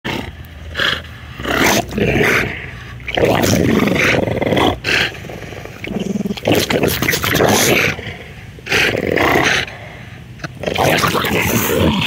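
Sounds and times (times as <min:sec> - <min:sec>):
dogs growling: 0:00.1 - 0:12.0.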